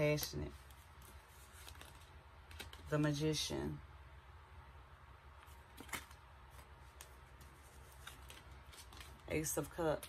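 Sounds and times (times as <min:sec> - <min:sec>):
low steady hum: 0:00.0 - 0:10.0
cards being picked up and laid down: 0:05.4 - 0:09.3.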